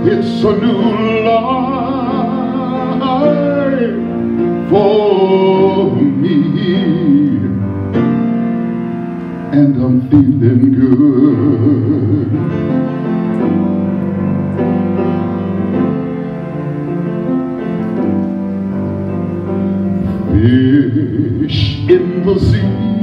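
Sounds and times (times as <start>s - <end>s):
man singing with vibrato: 0.0s - 7.8s, 9.5s - 12.8s, 20.0s - 23.0s
grand piano: 0.0s - 23.0s.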